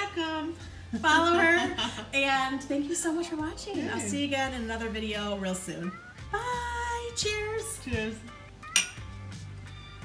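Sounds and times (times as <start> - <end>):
soft background music: 0.0 - 10.0
glasses clinking: 8.6 - 9.2.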